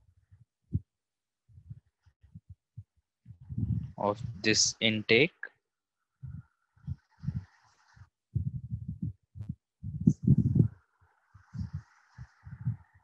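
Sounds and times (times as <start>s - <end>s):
stylus writing on tablet: 6.2s - 10.8s, 11.4s - 13.0s.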